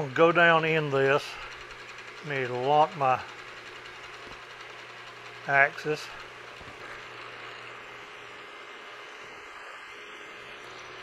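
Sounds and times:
milling machine humming: 0.0 - 11.0.

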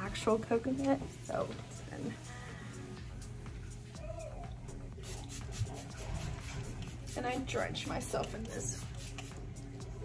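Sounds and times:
spray bottle spritzing: 8.8 - 9.4.

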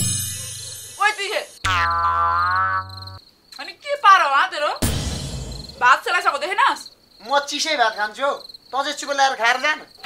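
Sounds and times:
crickets chirping: 0.0 - 10.0
sudden loud hit: 4.8 - 5.8.

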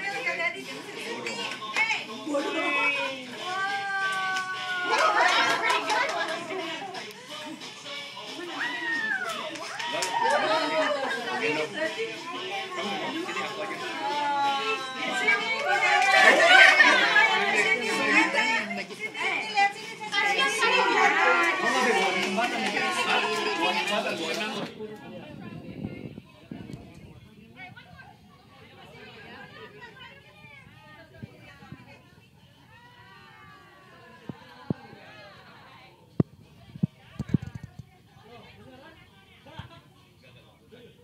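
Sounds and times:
children and adults chattering: 0.0 - 9.5, 10.1 - 41.0.

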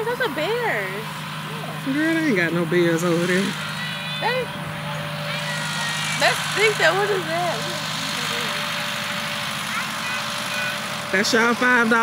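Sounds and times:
tractor engine running: 0.0 - 12.0.

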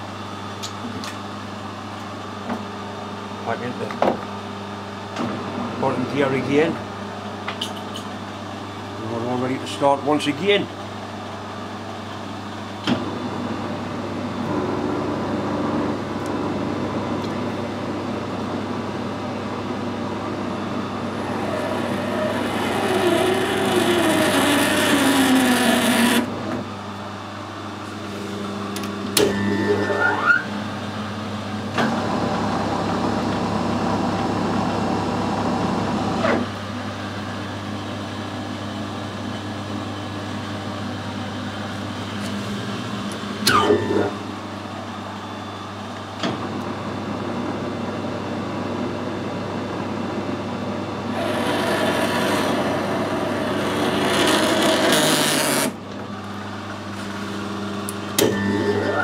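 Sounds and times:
lathe motor hum: 13.4 - 26.4, 51.0 - 59.0
lathe cutting metal: 21.0 - 26.3, 51.1 - 55.7.

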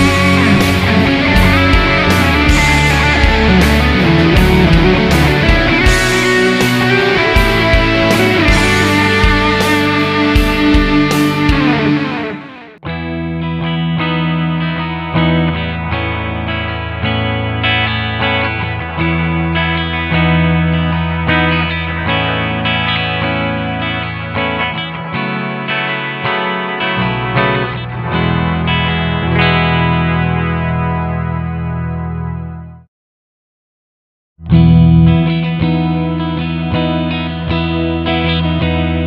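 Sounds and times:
backing track: 0.0 - 32.8
clean electric guitar chords: 0.0 - 32.9, 34.4 - 39.0
distorted electric guitar: 0.0 - 32.9, 34.4 - 39.0.

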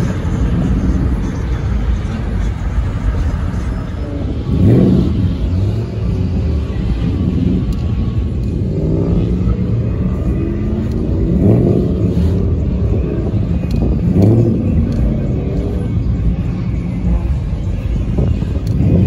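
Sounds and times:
car engines revving: 0.0 - 19.0.

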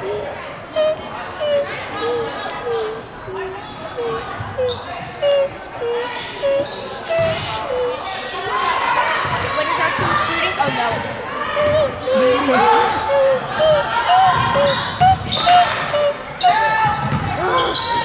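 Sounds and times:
people calling out in gym: 0.0 - 18.0.

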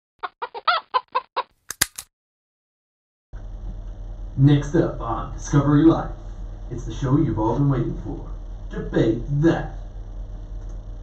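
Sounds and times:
chicken clucking: 0.2 - 1.5.

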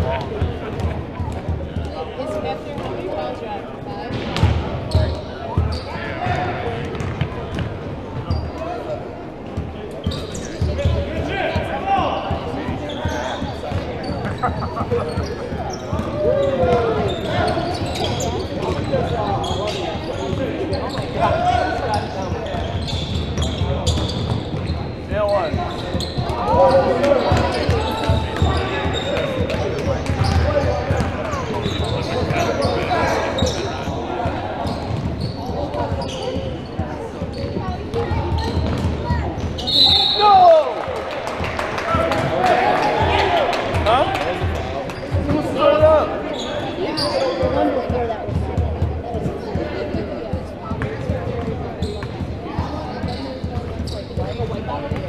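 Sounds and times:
sneakers squeaking: 0.0 - 3.4, 4.0 - 55.0
voices echoing in gym: 0.0 - 55.0
basketball bouncing on court: 0.1 - 2.0, 4.1 - 8.4, 21.9 - 26.5, 27.1 - 39.6, 47.8 - 55.0.

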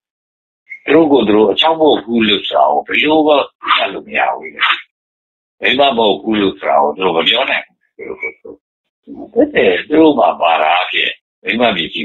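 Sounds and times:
man speaking: 0.8 - 4.9, 5.6 - 12.0.

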